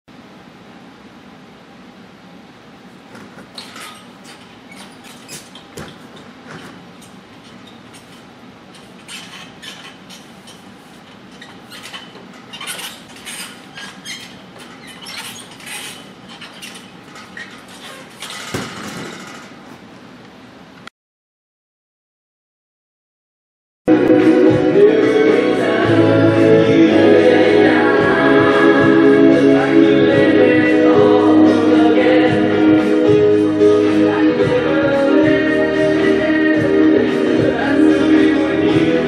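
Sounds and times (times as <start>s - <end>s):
gymnastics bar squeaking and creaking: 3.1s - 19.9s.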